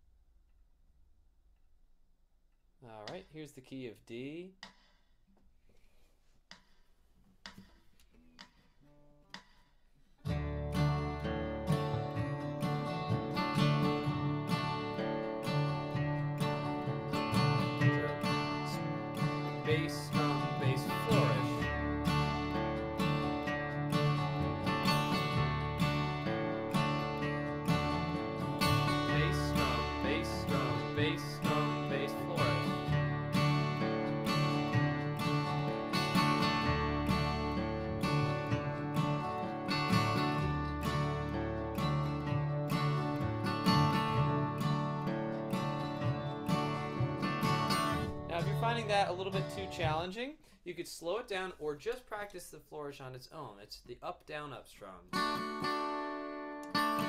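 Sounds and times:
acoustic guitar strumming bluegrass: 0:10.2 - 0:52.0, 0:54.3 - 0:57.0.

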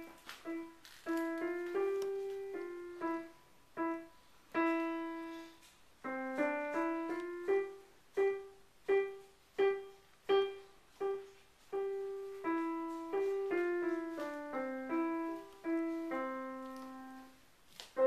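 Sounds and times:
slow piano melody: 0:00.0 - 0:18.0.

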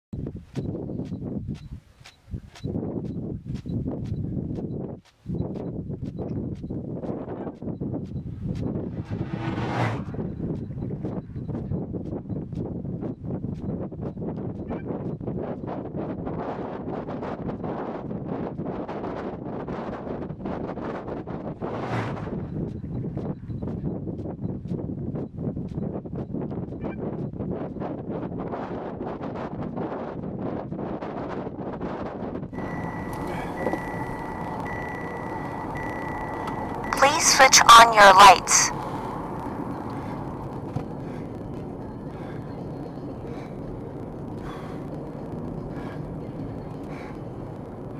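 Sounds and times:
vehicle interior noise: 0:00.2 - 0:14.2, 0:32.6 - 0:47.9
strong wind buffeting microphone: 0:00.2 - 0:36.9, 0:38.8 - 0:47.9
steady high electronic tone: 0:32.6 - 0:43.2.

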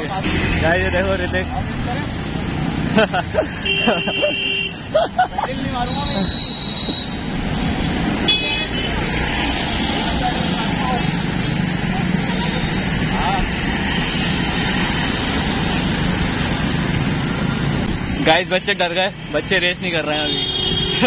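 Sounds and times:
city traffic: 0:00.0 - 0:21.0
road noise: 0:00.0 - 0:21.0.

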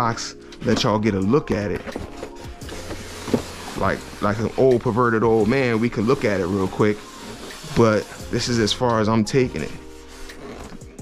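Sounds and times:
cardboard scraping on cardboard: 0:00.0 - 0:11.0.

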